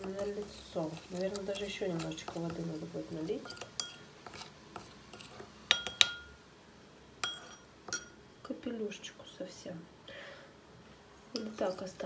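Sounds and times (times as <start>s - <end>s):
soft scrapes in bowl: 0.0s - 5.5s, 11.3s - 12.0s
spoon stirring thick paste: 0.0s - 6.4s, 7.2s - 8.2s, 11.3s - 12.0s
spoon clinking against glass: 7.2s - 8.2s.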